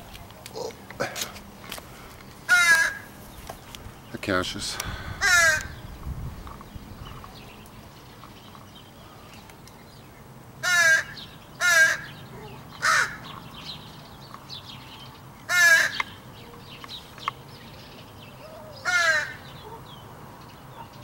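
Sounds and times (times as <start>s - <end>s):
crow cawing: 2.5s - 3.1s, 5.0s - 5.8s, 10.6s - 13.3s, 15.5s - 16.2s, 18.4s - 19.8s.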